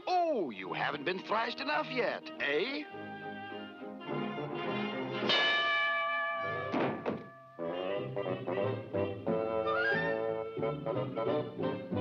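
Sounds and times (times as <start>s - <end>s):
orchestral cartoon music: 0.4s - 5.5s, 7.6s - 12.0s
dull cartoon thunk: 6.7s - 7.3s.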